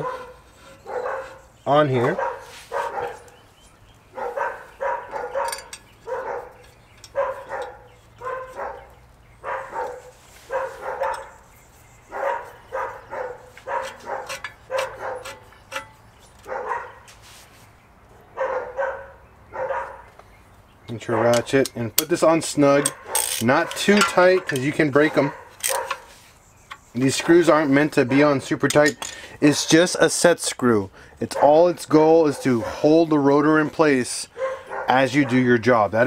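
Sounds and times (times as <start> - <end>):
dog barking: 0.0 - 1.4, 2.1 - 3.4, 4.1 - 11.4, 12.1 - 15.4, 16.4 - 17.1, 18.2 - 20.1, 22.8 - 23.3, 25.2 - 26.1, 31.4 - 31.6, 32.4 - 32.9, 34.4 - 35.4.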